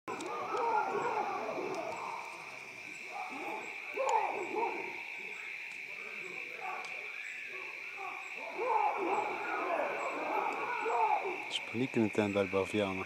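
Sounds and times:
baboons calling: 0.1 - 11.9.

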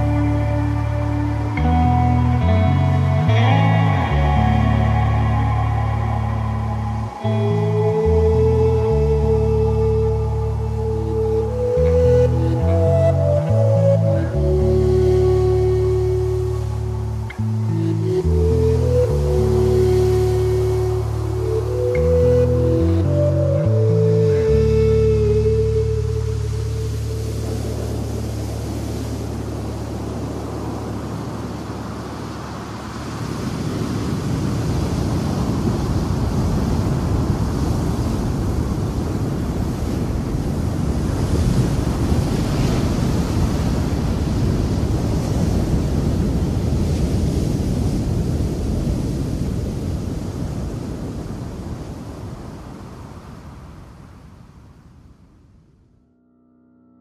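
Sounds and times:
rushing wind: 0.0 - 55.8.

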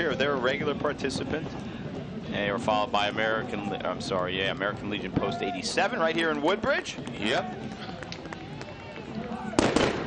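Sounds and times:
street crowd murmur: 0.0 - 10.0
gunshot crack: 9.6 - 10.0.

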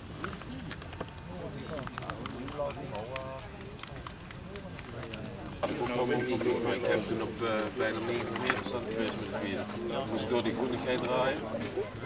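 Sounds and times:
indistinct background voices: 0.2 - 12.0
light clicks and taps: 0.6 - 9.4.

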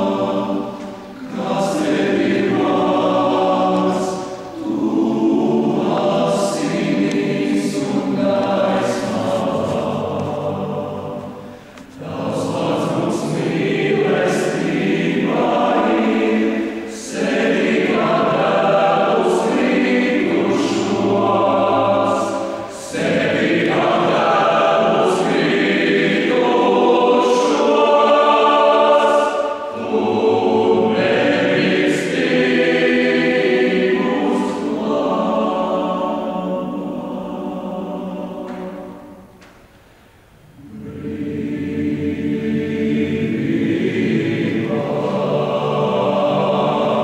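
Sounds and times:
men's choir singing: 0.0 - 39.4, 40.6 - 47.0
singers breathing: 11.4 - 12.0.

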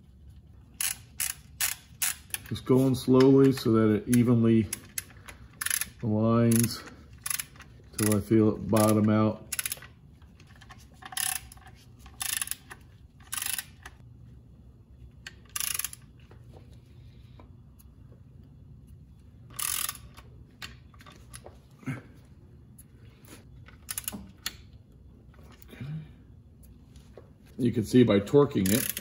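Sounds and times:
socket ratchet clicking: 0.8 - 2.5, 3.2 - 8.2, 8.8 - 10.0, 11.0 - 14.0, 15.3 - 16.1, 19.5 - 20.2, 23.8 - 24.6, 28.6 - 29.0.

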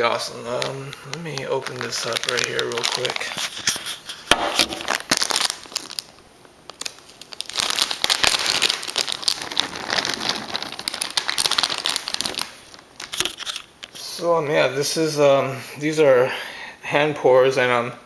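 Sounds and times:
plastic packet crinkling: 0.0 - 14.1.

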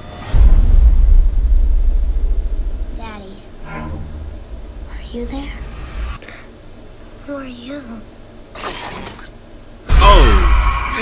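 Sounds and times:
deep bass hit rumble: 0.2 - 6.2, 9.9 - 10.7.

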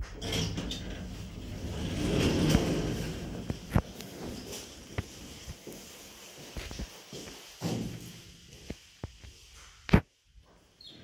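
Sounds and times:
elevator doors sliding open: 0.0 - 5.0.

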